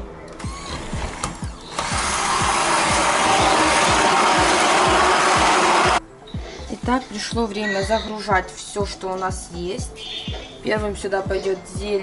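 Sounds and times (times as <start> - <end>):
immersion blender running: 1.7 - 6.0.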